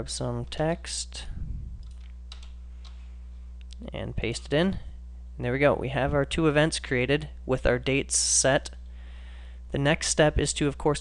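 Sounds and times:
low electrical hum: 0.0 - 11.0
keyboard and mouse clicks: 1.8 - 3.0.

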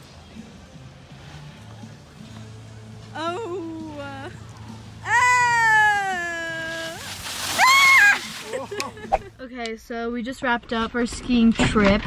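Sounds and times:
woman's wordless cry: 5.0 - 7.0.

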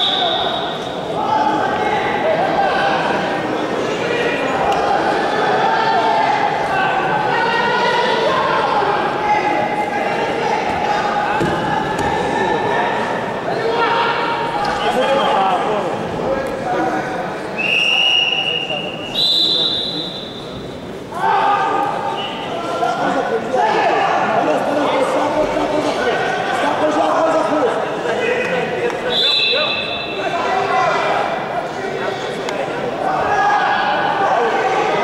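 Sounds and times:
men shouting in echoing hall: 21.1 - 35.0.

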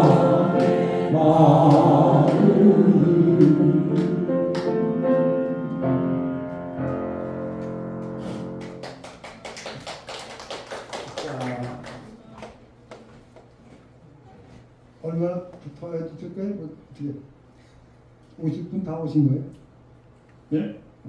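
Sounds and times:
voices singing together: 0.0 - 5.7
piano accompaniment: 0.0 - 9.4.

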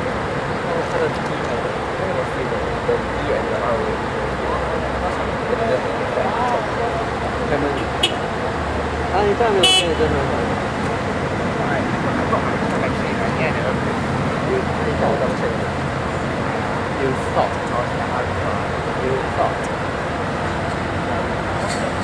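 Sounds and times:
bus diesel engines idling: 0.0 - 22.0
voices talking: 0.0 - 22.0.

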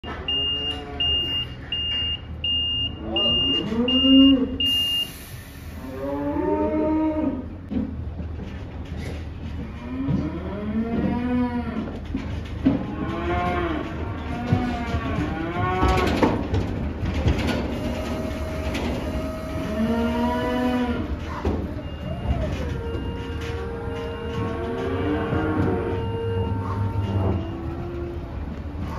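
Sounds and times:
truck reversing alarm beeps: 0.0 - 5.8, 17.5 - 28.5
calf mooing: 0.3 - 1.4, 3.0 - 4.6, 5.9 - 7.5, 9.7 - 12.0, 12.7 - 16.4, 17.8 - 28.6.

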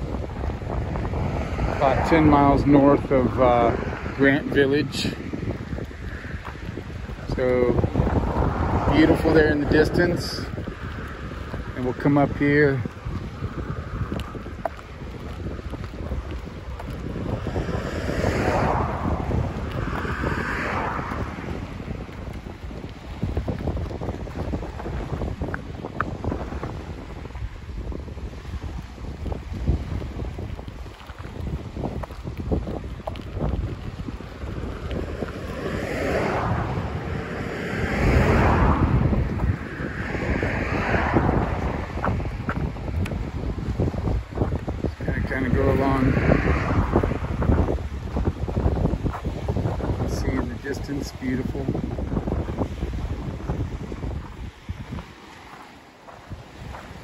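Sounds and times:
waves washing onto gravel: 0.0 - 57.0
wind buffeting microphone: 0.0 - 57.0.

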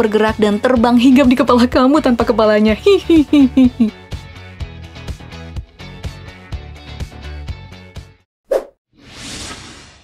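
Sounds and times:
whoosh: 8.5 - 10.0.

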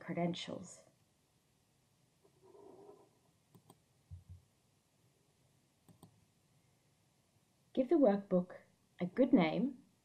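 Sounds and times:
computer mouse clicks: 2.8 - 4.3, 5.8 - 6.2
soft low thumps: 4.1 - 4.4.

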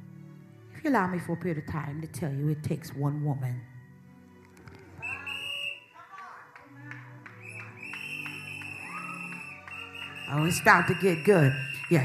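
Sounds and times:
high whistle-like tone: 5.0 - 6.0, 7.4 - 12.0.

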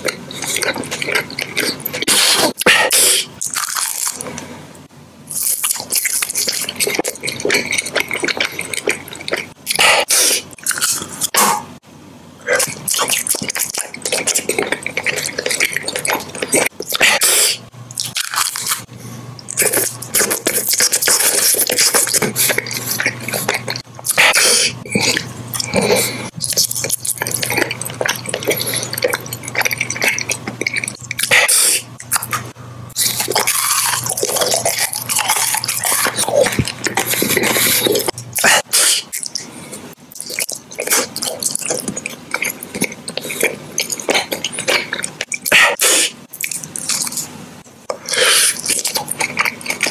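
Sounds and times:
wet chewing of candy: 0.0 - 4.4, 5.3 - 11.6, 12.5 - 49.9.

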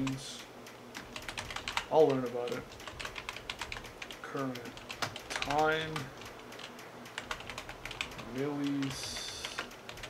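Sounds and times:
computer keyboard typing: 0.0 - 10.0.

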